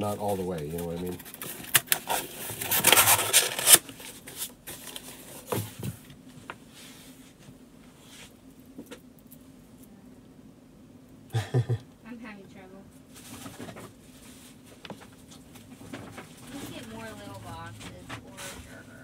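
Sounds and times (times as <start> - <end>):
cardboard rustling and scraping: 0.1 - 8.9, 13.1 - 18.8.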